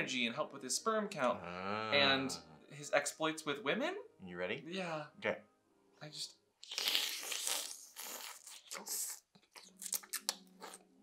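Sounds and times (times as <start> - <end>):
mouth clicks and smacks: 6.6 - 10.9.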